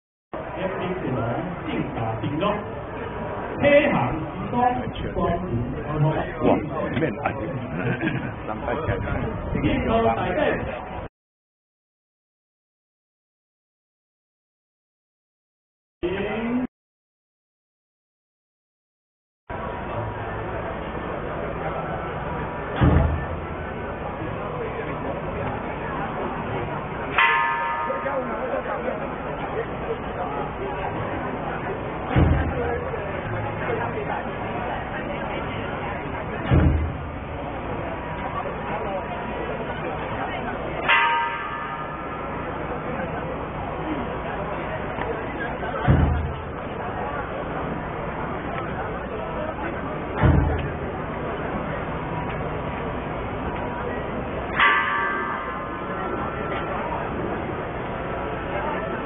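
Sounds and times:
crowd chatter: 0.3s - 11.1s, 16.0s - 16.7s, 19.5s - 59.0s
steady background noise: 0.4s - 11.1s, 19.5s - 59.0s.

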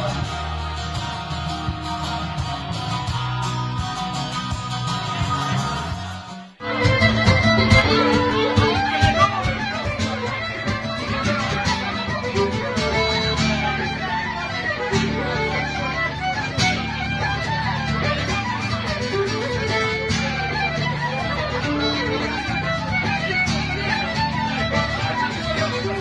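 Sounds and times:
acoustic guitar playing: 0.0s - 26.0s
fiddle playing: 0.0s - 26.0s.

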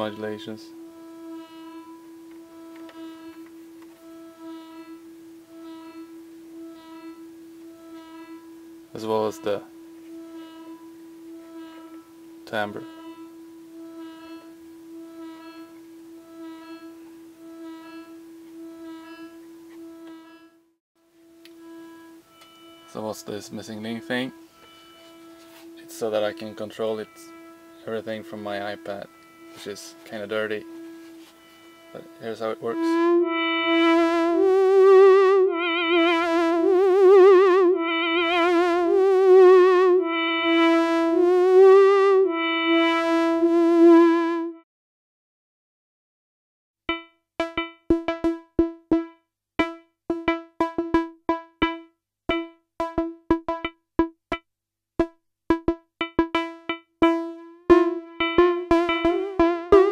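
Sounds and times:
faint hiss: 0.0s - 20.2s
synthesizer drone: 0.0s - 20.4s, 21.3s - 44.5s, 46.9s - 54.4s, 55.0s - 59.9s.

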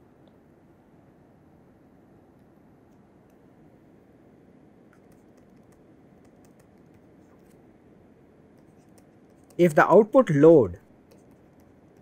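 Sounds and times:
stylus tapping on tablet screen: 4.9s - 7.2s, 8.5s - 9.7s, 11.0s - 12.0s.

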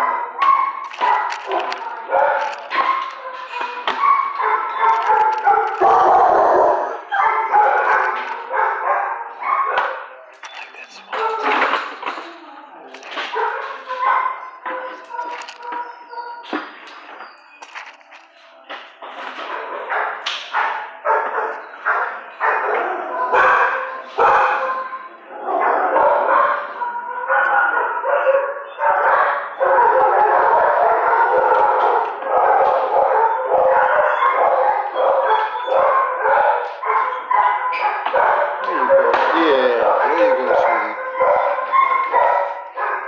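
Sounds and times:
dogs yipping and howling: 0.0s - 10.3s, 11.1s - 18.0s, 19.4s - 43.0s
dogs barking: 0.0s - 43.0s.

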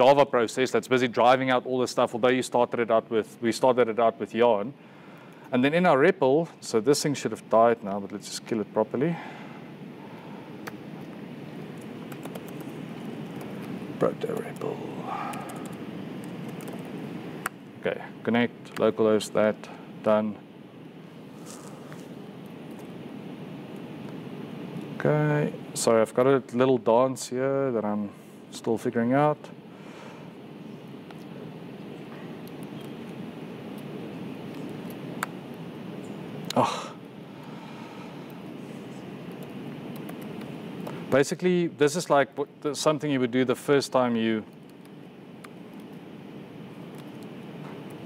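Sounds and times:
steady room hiss: 0.0s - 48.0s
typing on laptop keyboard: 11.7s - 13.7s, 15.2s - 16.9s, 46.8s - 48.0s
laptop keyboard clicks: 11.8s - 12.7s.

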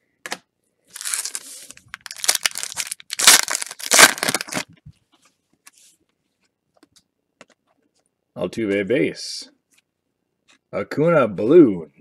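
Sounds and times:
wrapper tearing and crumpling: 0.9s - 4.7s.

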